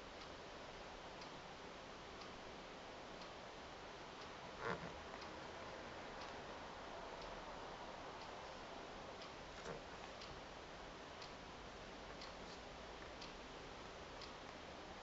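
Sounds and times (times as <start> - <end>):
room hiss: 0.0 - 15.0.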